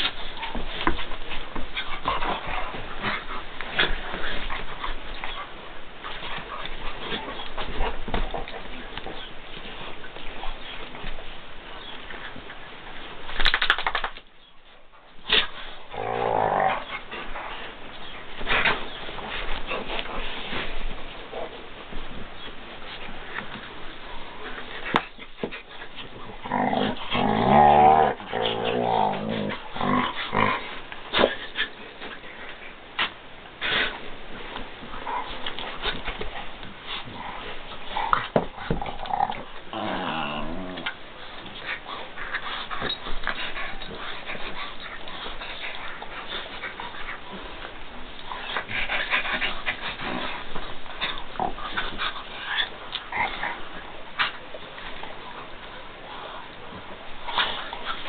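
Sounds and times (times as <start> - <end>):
paws scuffling and clicking: 0.0 - 14.3, 15.3 - 40.1, 40.7 - 58.0.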